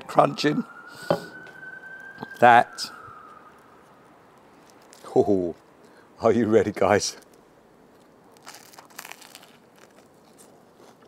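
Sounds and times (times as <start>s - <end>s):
faint high steady tone: 0.0s - 5.6s.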